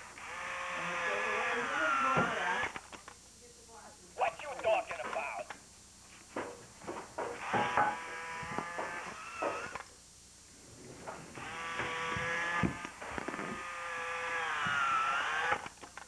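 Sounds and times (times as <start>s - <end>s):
toy motor and gears whirring: 0.2s - 2.9s, 7.4s - 9.9s, 11.4s - 16.0s.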